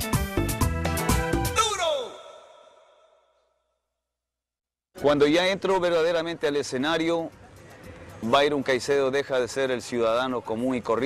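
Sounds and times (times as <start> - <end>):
song with steady beat: 0.0 - 2.4.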